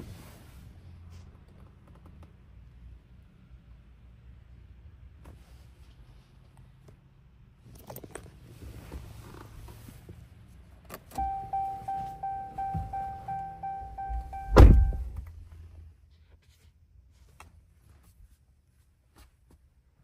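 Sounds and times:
dashboard warning chime: 11.2s - 15.1s
heavy thunk: 14.5s - 15.2s.

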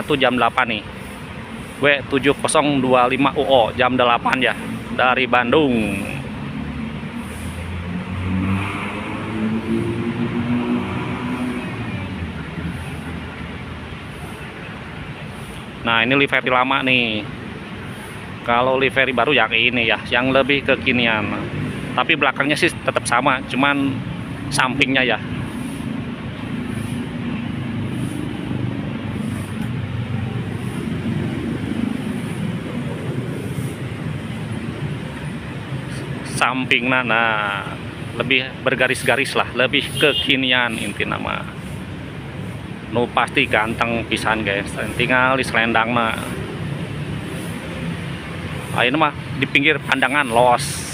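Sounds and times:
bus engine running: 0.0s - 8.4s, 9.0s - 39.7s.

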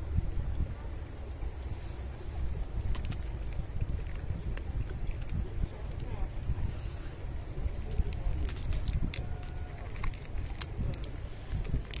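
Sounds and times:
wind buffeting microphone: 0.0s - 12.0s
cat crunching dry kibble: 2.9s - 6.2s, 7.6s - 12.0s.

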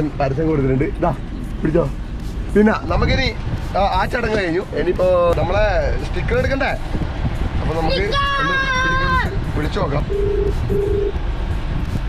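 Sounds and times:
low car rumble: 0.0s - 12.0s
phone ringback tone beeps: 10.1s - 11.2s.

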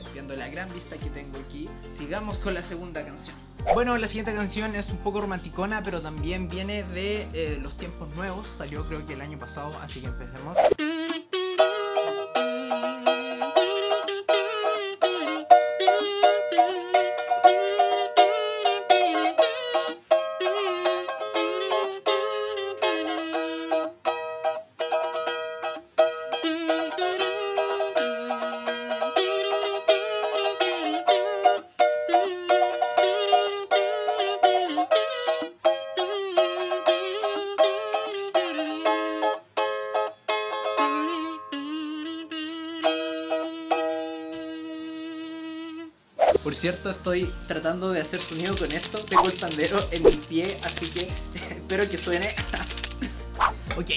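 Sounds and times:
kazoo buzzing melody: 10.8s - 11.9s, 41.0s - 43.8s.

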